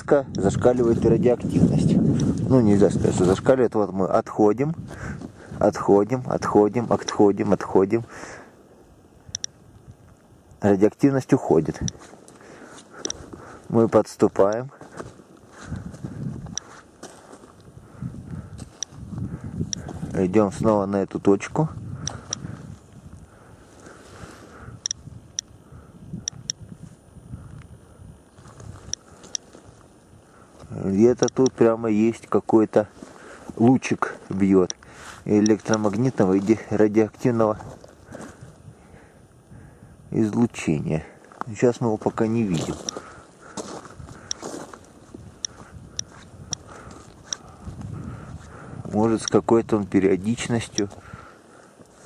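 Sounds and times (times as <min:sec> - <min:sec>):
footsteps and handling rumble: 0:00.0 - 0:08.1, 0:08.9 - 0:39.5, 0:40.1 - 0:52.0
dosimeter clicks: 0:07.0 - 0:07.4, 0:09.2 - 0:10.6, 0:11.7 - 0:12.4, 0:13.0 - 0:13.3, 0:14.1 - 0:14.7, 0:16.4 - 0:16.7, 0:18.6 - 0:19.0, 0:19.6 - 0:20.0, 0:22.0 - 0:22.5, 0:24.8 - 0:25.6, 0:26.2 - 0:27.8, 0:28.8 - 0:30.0, 0:31.1 - 0:31.8, 0:33.7 - 0:36.2, 0:44.2 - 0:44.5, 0:45.4 - 0:47.9, 0:49.2 - 0:49.5
dosimeter chirping: 0:08.9 - 0:14.8, 0:15.6 - 0:49.5.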